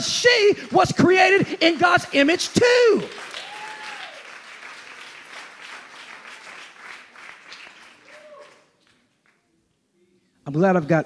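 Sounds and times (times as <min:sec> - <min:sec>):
congregation applauding: 0:00.0 - 0:09.6
calls from crowd: 0:03.0 - 0:04.4.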